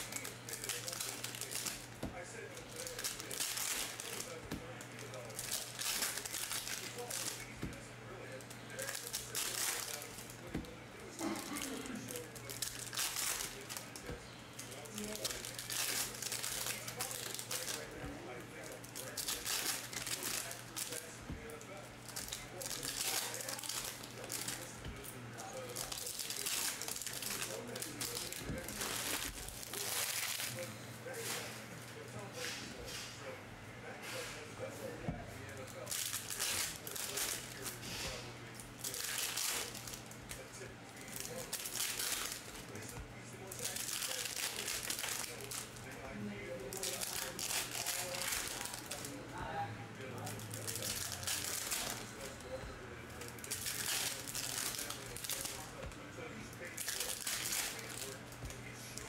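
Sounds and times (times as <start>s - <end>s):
foil wrappers crinkling and tearing: 0.0s - 32.6s, 35.4s - 49.4s, 50.0s - 59.0s
steady low hum: 0.0s - 59.0s.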